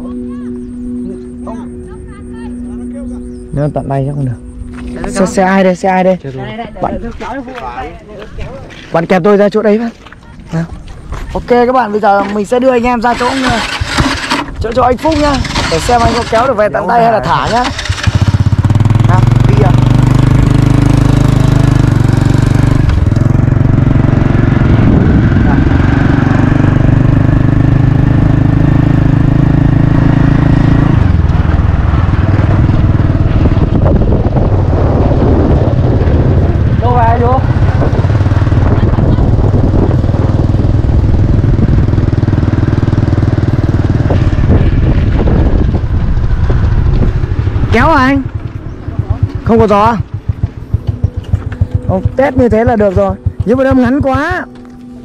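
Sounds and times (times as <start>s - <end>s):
motorbike engine running: 0.0s - 7.8s, 9.0s - 55.0s
voices: 0.0s - 18.1s, 36.6s - 40.2s, 47.7s - 55.0s.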